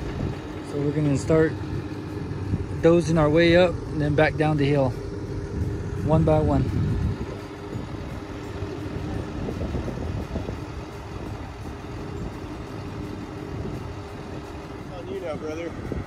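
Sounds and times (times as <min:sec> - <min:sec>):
bulldozer diesel engine running: 0:00.0 - 0:16.0.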